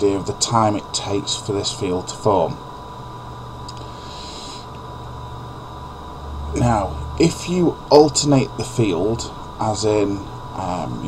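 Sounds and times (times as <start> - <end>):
background hiss: 0.0 - 11.0
low electrical hum: 0.0 - 11.0.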